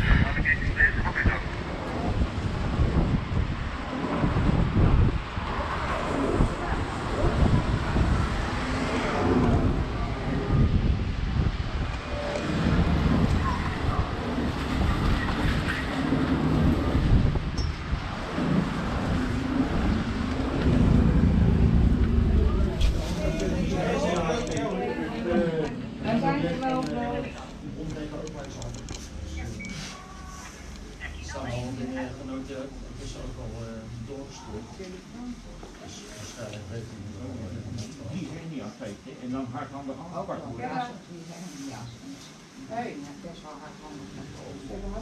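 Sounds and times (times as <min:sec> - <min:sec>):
wind buffeting microphone: 0:00.0 - 0:24.8
faint city street noise: 0:00.0 - 0:45.0
indistinct voices: 0:05.7 - 0:17.3, 0:18.2 - 0:38.2.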